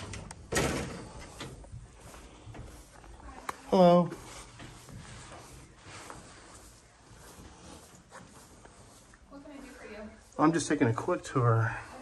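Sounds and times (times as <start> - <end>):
door swinging open: 0.0 - 1.6.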